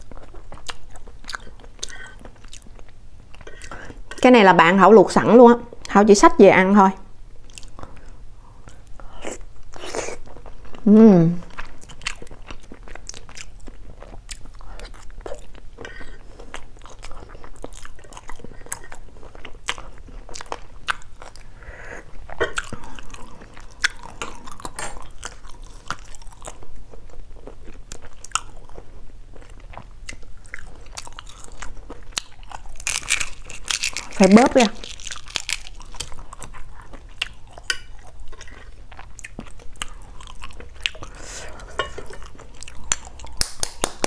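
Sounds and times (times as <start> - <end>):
close chewing with crunches: 0.0 - 4.1, 7.4 - 10.9, 11.5 - 44.0.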